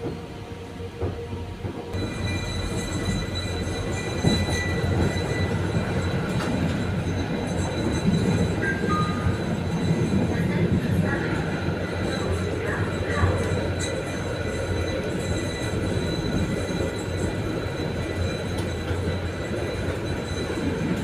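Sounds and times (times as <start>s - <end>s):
tram running rumble: 0.0s - 21.0s.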